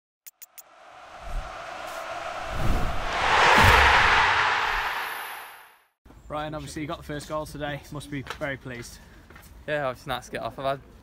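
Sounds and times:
swell of noise: 0.6s - 5.8s
low thuds: 0.8s - 5.6s.

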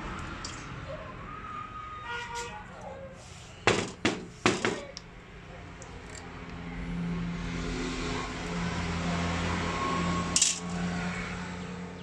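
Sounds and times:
sharp metallic clink: 10.4s - 10.7s.

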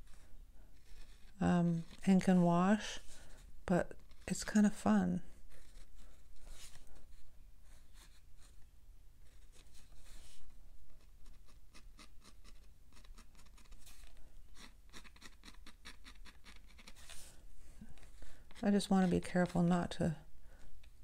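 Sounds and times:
pen scratching on paper: 0.0s - 3.1s, 5.5s - 6.8s, 11.2s - 17.3s.

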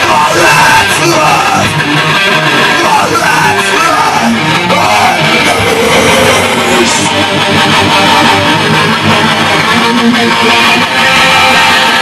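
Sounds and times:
electric guitars playing rock: 0.0s - 12.0s.

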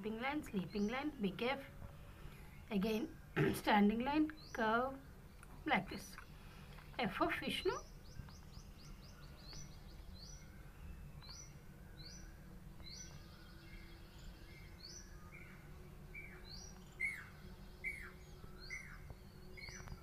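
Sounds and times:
birds chirping: 0.0s - 20.0s
low steady hum: 0.0s - 20.0s.

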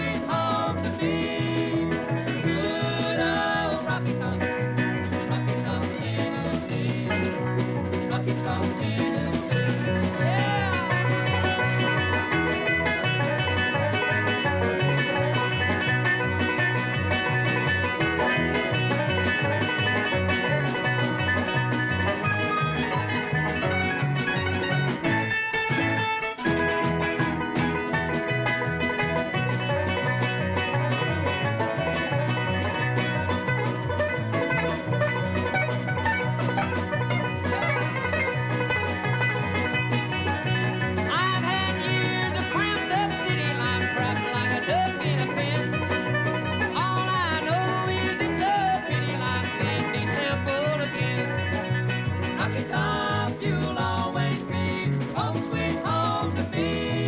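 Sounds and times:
banjo picking fast lead: 0.0s - 57.0s
bluegrass band playing: 0.0s - 57.0s.

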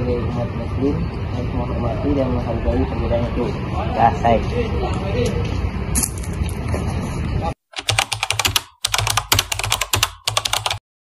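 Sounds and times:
rapid keyboard clicking: 7.8s - 10.8s.

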